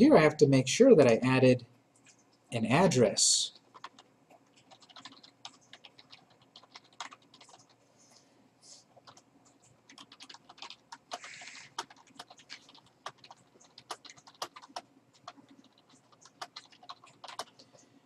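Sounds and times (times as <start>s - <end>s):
typing on computer keyboard: 3.5s - 7.8s, 9.0s - 17.9s.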